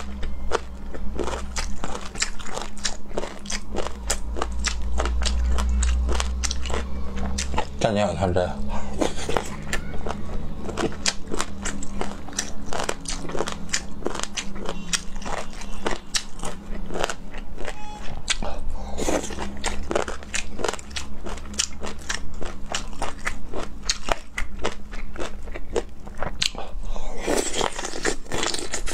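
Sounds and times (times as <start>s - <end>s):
wet crunchy chewing: 0.0s - 7.7s, 9.0s - 28.9s
steady low hum: 0.0s - 28.9s.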